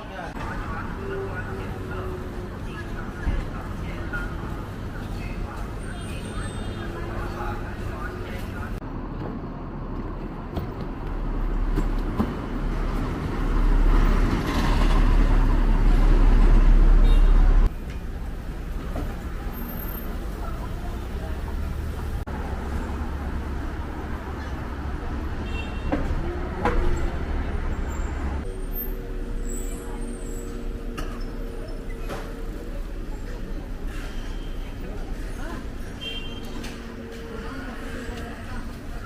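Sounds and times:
pedestrian street background noise: 0:00.0 - 0:39.0.

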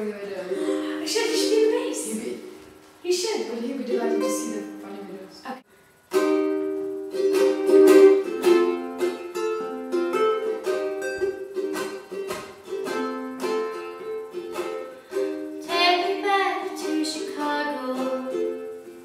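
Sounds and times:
ukulele strumming chords: 0:00.0 - 0:02.6, 0:03.8 - 0:05.3, 0:06.0 - 0:19.0
woman singing: 0:15.6 - 0:18.6.

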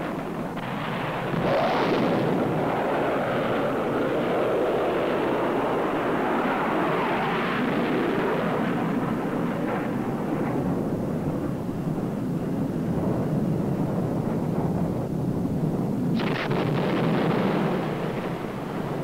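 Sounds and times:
jet in flight roaring: 0:00.0 - 0:19.0.

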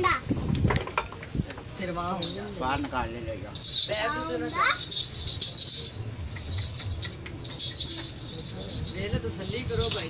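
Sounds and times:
metal ankle bells jingling: 0:01.6 - 0:10.0.

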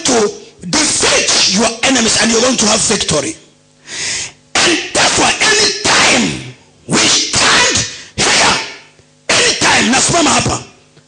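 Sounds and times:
preacher shouting into microphone: 0:00.0 - 0:02.5, 0:04.5 - 0:10.7.

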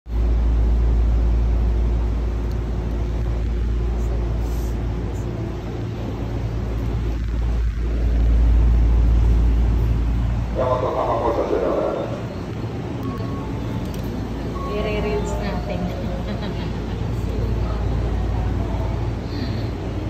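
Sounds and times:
faint hum: 0:00.1 - 0:20.0
train car rumbling: 0:00.1 - 0:20.0.

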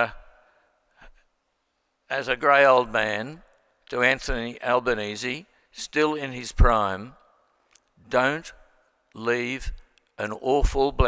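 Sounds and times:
man saying uh into microphone: 0:00.0 - 0:00.2, 0:02.1 - 0:07.2, 0:09.2 - 0:11.0.

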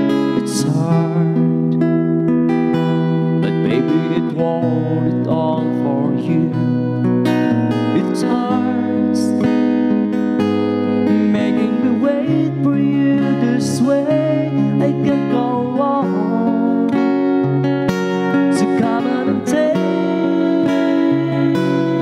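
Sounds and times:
man singing: 0:00.0 - 0:01.9, 0:03.3 - 0:09.8, 0:10.9 - 0:17.5, 0:18.2 - 0:22.0
acoustic guitar strumming: 0:00.0 - 0:22.0.

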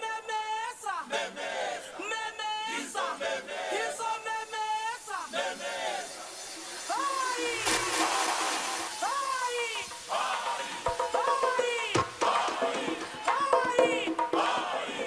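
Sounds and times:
dance music: 0:03.8 - 0:15.0.

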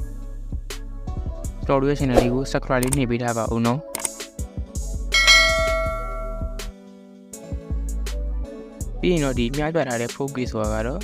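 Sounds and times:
bright bell chime ringing: 0:05.2 - 0:06.7.

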